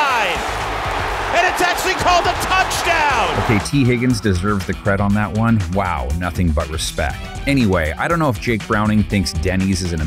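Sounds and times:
excited announcer voice: 0.0s - 0.5s, 1.1s - 10.0s
stadium crowd noise: 0.0s - 3.9s.

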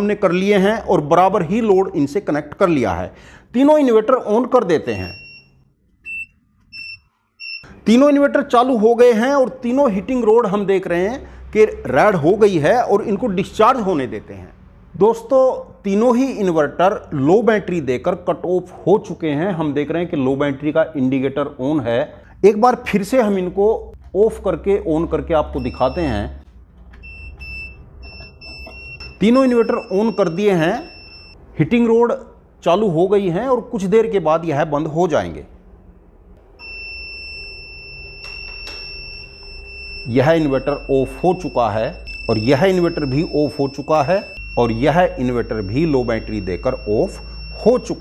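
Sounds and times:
inverter beeps: 0.0s - 0.8s, 4.8s - 8.0s, 25.6s - 26.4s, 27.0s - 31.4s, 36.6s - 48.0s.

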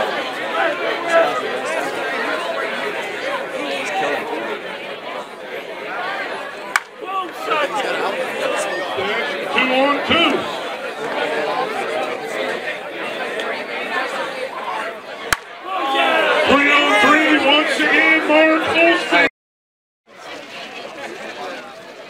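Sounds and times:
people chatting: 0.0s - 19.3s, 20.1s - 22.0s
bat hitting softball: 6.7s - 7.0s, 15.3s - 15.7s.

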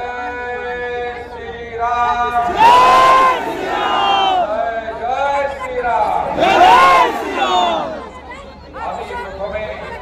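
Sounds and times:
crowd shouting: 2.3s - 5.0s, 6.2s - 8.4s.

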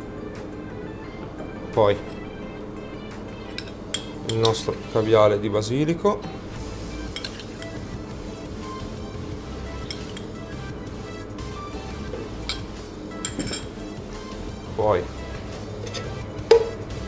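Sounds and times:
soft background music: 0.0s - 17.0s
metal spoon clinking on cup: 3.5s - 4.6s, 7.2s - 7.8s, 9.8s - 10.3s, 12.4s - 13.8s.

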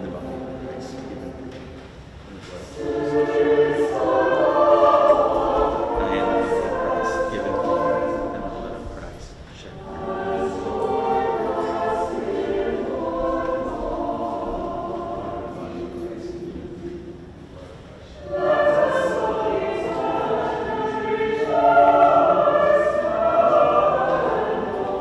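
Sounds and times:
church choir singing: 0.0s - 25.0s.

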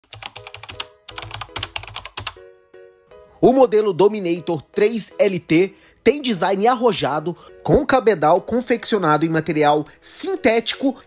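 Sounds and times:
keyboard typing clicks: 0.0s - 2.4s.

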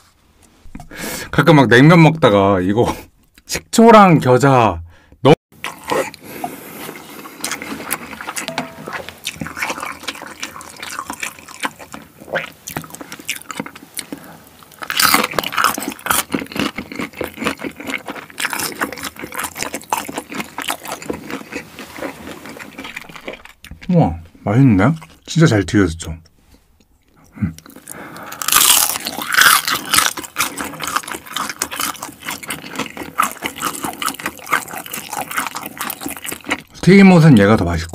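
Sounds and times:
chewing and wet mouth smacking: 6.8s - 23.9s, 27.0s - 36.8s.

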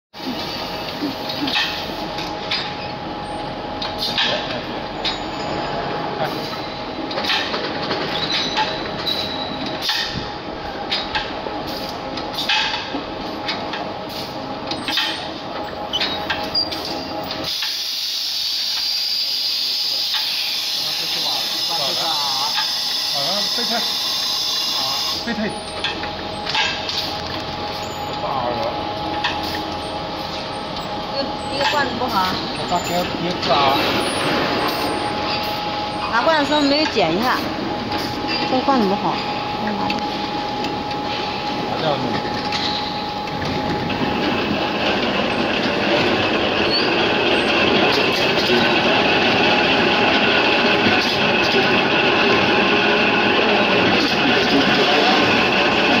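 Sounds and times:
machine humming and hissing: 0.2s - 56.0s
steady high whine: 0.2s - 56.0s.

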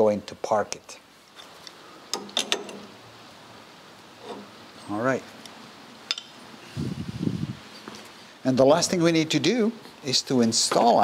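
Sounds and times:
faint workshop room noise: 0.0s - 11.0s.

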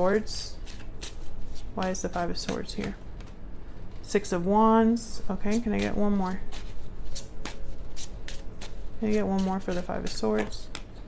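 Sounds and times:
cards being shuffled: 0.1s - 4.1s, 5.3s - 11.0s.

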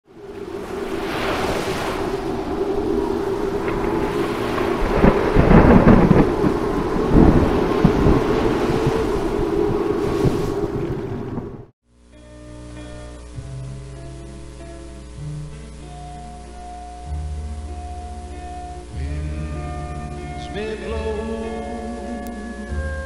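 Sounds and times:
rushing rain-like noise: 0.1s - 11.7s, 12.6s - 23.0s
thunder rumbling: 0.1s - 11.7s
soft music: 11.8s - 23.0s
low musical drone: 12.0s - 23.0s.

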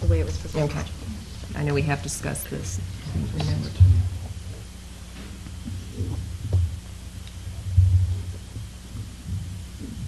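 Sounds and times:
low electrical hum: 0.0s - 10.0s
low muffled thumps: 3.2s - 10.0s.

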